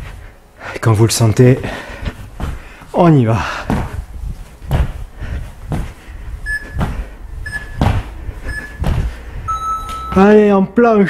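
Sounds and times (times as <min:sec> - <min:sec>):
feet thumping on floor: 0:01.8 - 0:10.3
interval timer beeps: 0:06.4 - 0:06.8, 0:07.4 - 0:08.9, 0:09.5 - 0:10.4.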